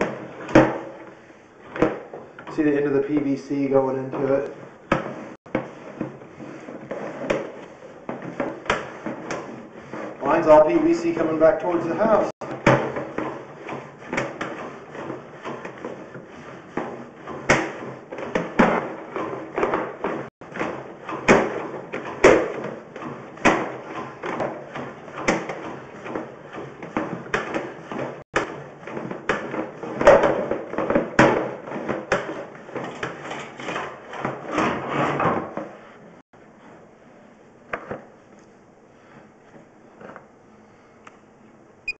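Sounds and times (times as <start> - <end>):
cable knocking and scraping in pipe: 0.0 - 35.8.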